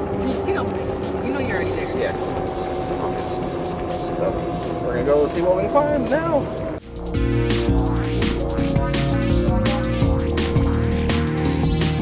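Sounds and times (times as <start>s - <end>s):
golf cart driving hum: 0.0s - 12.0s.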